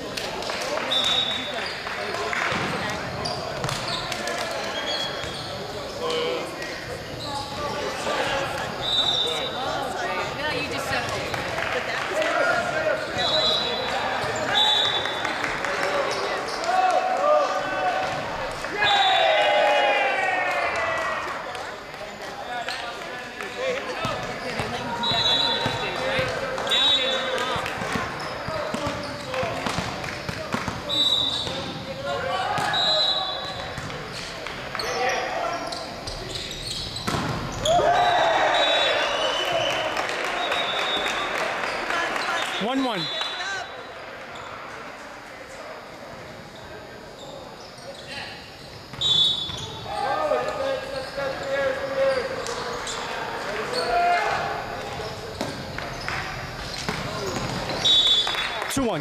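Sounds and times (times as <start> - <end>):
ball hits and bounces on court: 2.3 - 4.5, 27.4 - 31.8, 32.5 - 32.8, 37.0 - 37.8, 55.4 - 55.9, 56.7 - 57.8
players shouting: 16.5 - 21.4, 37.6 - 43.9.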